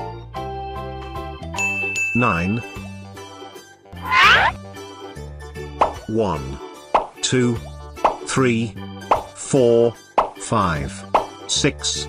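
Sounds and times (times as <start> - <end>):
children's background music: 0.0 - 12.0
rising glide sound effect: 4.0 - 4.6.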